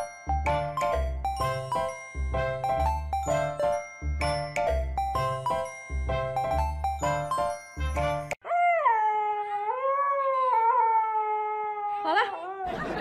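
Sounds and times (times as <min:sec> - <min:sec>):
chiming background music: 0:00.0 - 0:08.4
puppy whining howl: 0:08.4 - 0:12.8.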